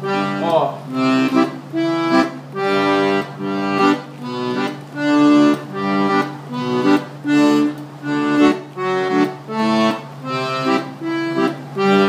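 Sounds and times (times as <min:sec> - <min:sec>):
accordion playing notes: 0:00.0 - 0:12.0.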